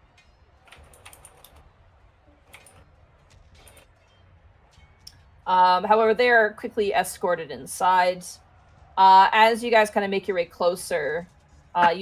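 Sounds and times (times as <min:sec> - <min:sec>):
typing on computer keyboard: 0:00.6 - 0:01.6.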